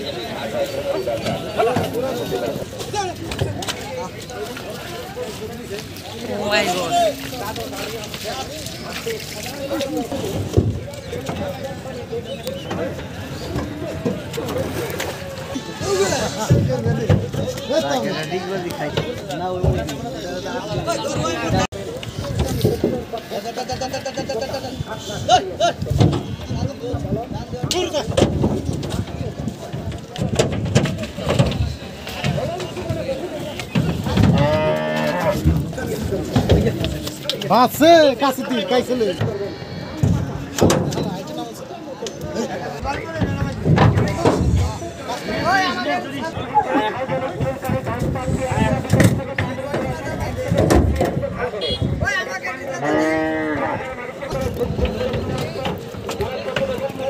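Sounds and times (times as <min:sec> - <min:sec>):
hooves knocking on wooden boards: 0:25.9 - 0:37.5
cow mooing: 0:34.3 - 0:35.4, 0:52.8 - 0:53.9.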